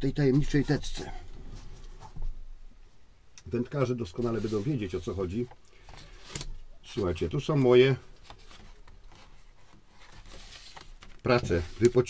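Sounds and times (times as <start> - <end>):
rustling of clothing and cord: 0.0 - 12.0.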